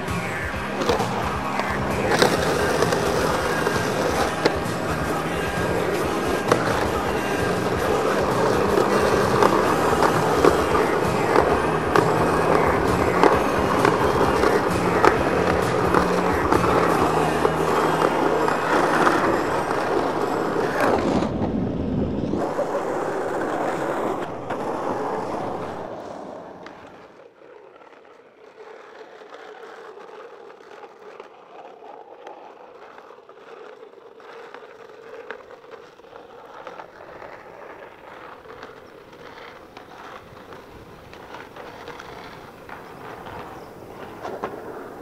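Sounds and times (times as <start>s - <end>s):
music: 0.0s - 20.9s
skateboard clacking on curb: 0.0s - 45.0s
skateboard rolling on asphalt: 0.0s - 45.0s
skateboard trucks grinding on concrete: 0.0s - 45.0s.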